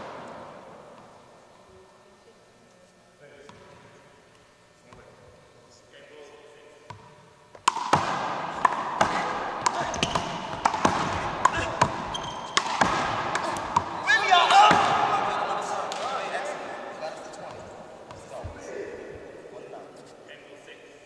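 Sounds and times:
ball smacking off wall and floor: 0:07.6 - 0:14.0
sneakers squeaking on court: 0:09.0 - 0:14.1.

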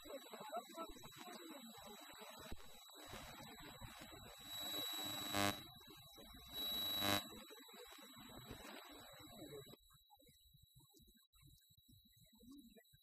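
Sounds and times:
electronic buzzer: 0:02.6 - 0:07.4.

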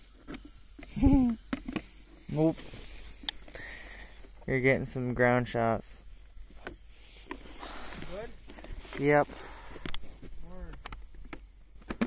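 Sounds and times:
person laughing: 0:00.9 - 0:01.4.

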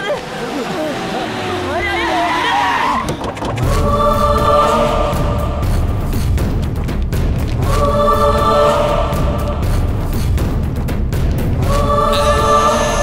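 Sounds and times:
dramatic film score with choir: 0:00.2 - 0:13.0.

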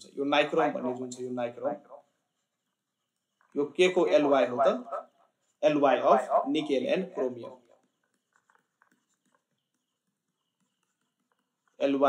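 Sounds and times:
stylus ticking on tablet screen: 0:02.0 - 0:12.0.

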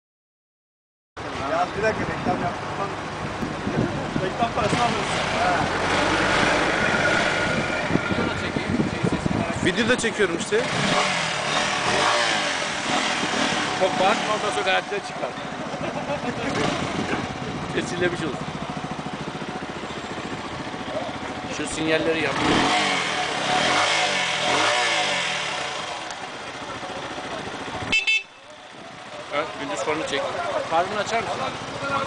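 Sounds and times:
motorcycle engine revving: 0:02.8 - 0:32.0.

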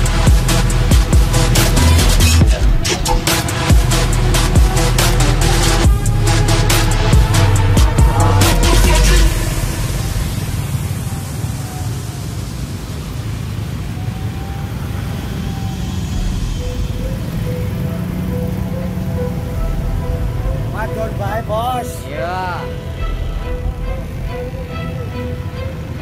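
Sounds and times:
loud electronic music: 0:00.0 - 0:11.0, 0:16.0 - 0:26.0
motor scooters rumbling: 0:00.0 - 0:26.0.

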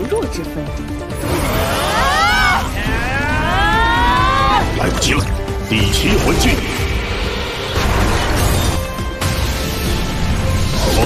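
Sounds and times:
dramatic music: 0:00.0 - 0:11.0
high rising and falling cries: 0:01.3 - 0:04.8.

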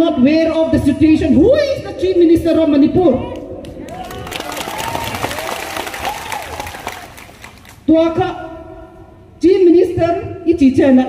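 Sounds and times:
crowd clapping: 0:03.6 - 0:07.9.

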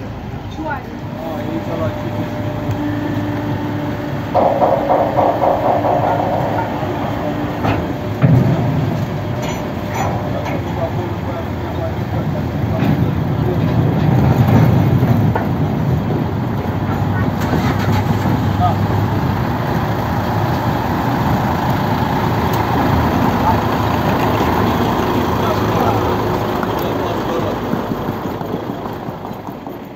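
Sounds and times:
crowd chattering: 0:00.0 - 0:29.9
low engine rumble: 0:00.0 - 0:29.9.

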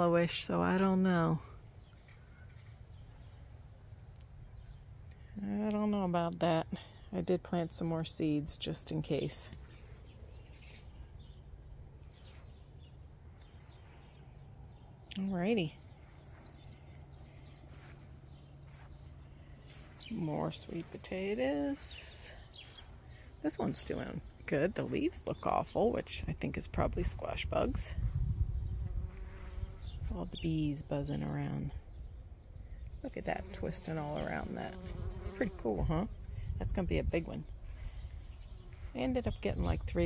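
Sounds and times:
low outdoor rumble: 0:00.0 - 0:29.1
birds chirping: 0:00.0 - 0:40.0
bees buzzing: 0:33.1 - 0:36.1.

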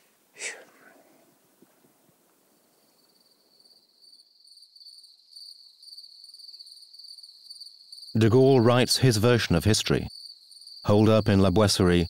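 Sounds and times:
crickets chirping: 0:01.2 - 0:12.0.

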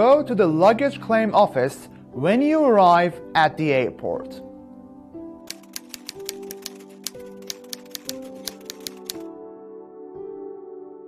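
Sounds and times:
soft background music: 0:00.0 - 0:11.0
typewriter key clicks: 0:05.5 - 0:09.3.

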